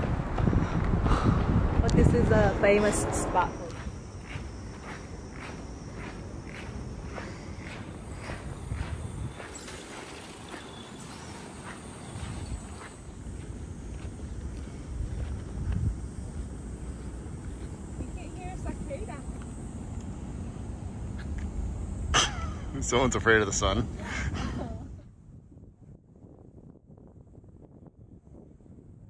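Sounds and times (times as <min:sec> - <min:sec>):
low rumble: 0:00.0 - 0:09.4
footsteps on pavement: 0:00.0 - 0:16.0.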